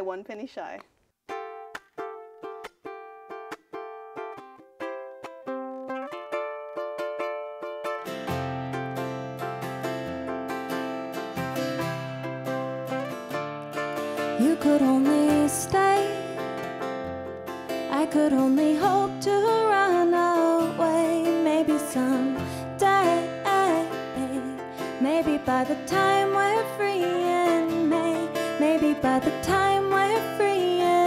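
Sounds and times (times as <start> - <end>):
acoustic guitar: 1.3 - 31.0
ukulele plucked notes and chords: 1.3 - 31.0.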